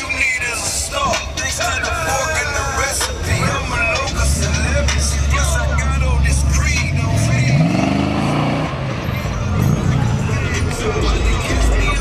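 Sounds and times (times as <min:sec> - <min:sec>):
heavy bass music: 0:00.0 - 0:12.0
voices: 0:00.0 - 0:12.0
car engine revving: 0:03.2 - 0:12.0.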